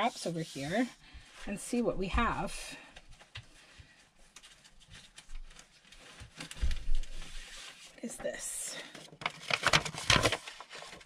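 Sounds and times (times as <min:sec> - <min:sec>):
paper rustling and crinkling: 0:03.0 - 0:08.2, 0:08.8 - 0:11.0.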